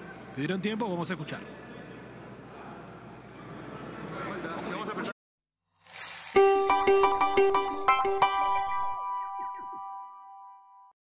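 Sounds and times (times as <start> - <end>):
crowd background noise: 0.0 - 5.1.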